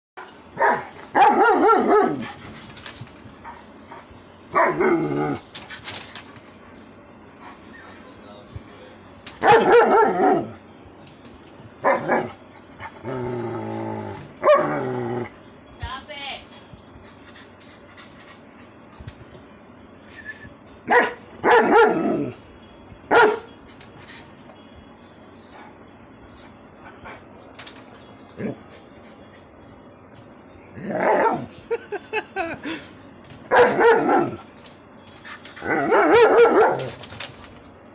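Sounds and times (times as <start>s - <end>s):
dog barking: 0.6s - 2.2s, 9.4s - 10.5s, 11.8s - 12.3s, 20.9s - 22.0s, 23.1s - 23.5s, 33.5s - 34.4s, 35.8s - 36.9s.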